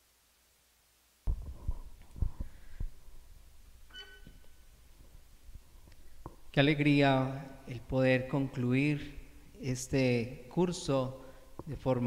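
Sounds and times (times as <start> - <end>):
microphone handling thumps: 1.3 - 3.6.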